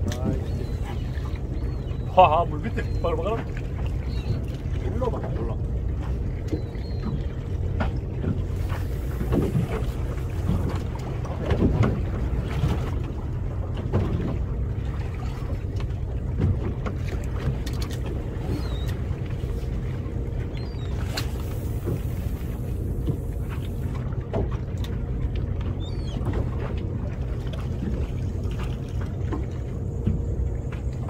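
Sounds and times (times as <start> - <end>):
wind rumble on microphone: 0.0 - 31.0.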